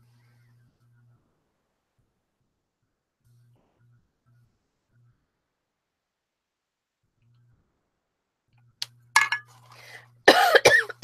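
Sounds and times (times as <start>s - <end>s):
woman coughing: 10.3s - 11.0s.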